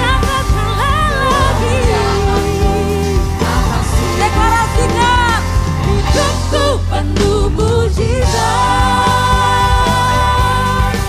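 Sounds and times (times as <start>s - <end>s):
drum and bass beat: 0.0s - 11.0s
live band playing: 0.0s - 11.0s
woman singing into microphone: 0.0s - 11.0s.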